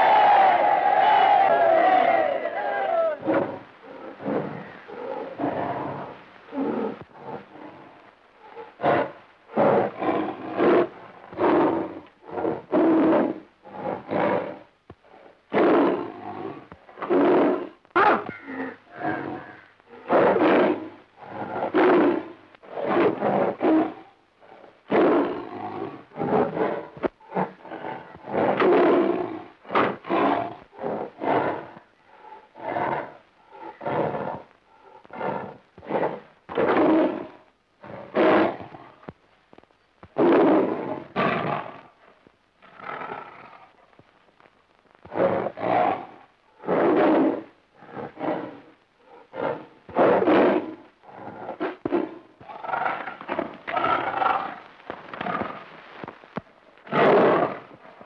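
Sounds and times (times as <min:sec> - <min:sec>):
tiger roaring: 0:03.1 - 0:39.0, 0:45.1 - 0:55.7, 0:56.8 - 0:58.0.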